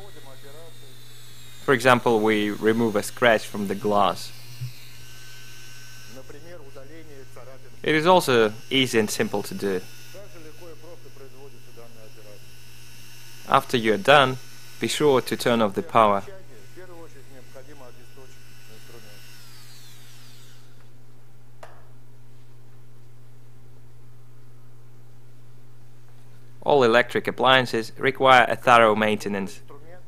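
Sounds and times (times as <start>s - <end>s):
mini drill humming and whining: 0.0s - 21.0s.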